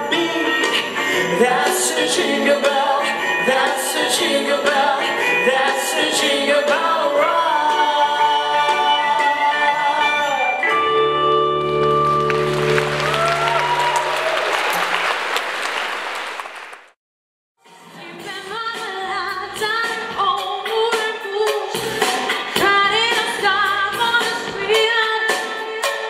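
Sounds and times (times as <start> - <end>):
upbeat band music: 0.0 - 14.9, 18.1 - 26.0
audience applause: 11.8 - 17.0
woman singing: 17.9 - 26.0.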